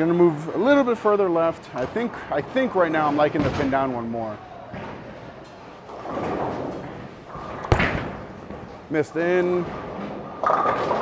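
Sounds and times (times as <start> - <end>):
bowling ball thud: 5.9 - 8.7.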